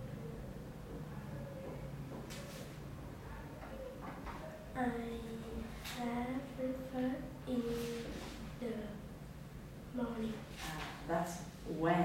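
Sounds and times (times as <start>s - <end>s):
girl speaking: 4.8s - 9.1s, 10.0s - 10.9s.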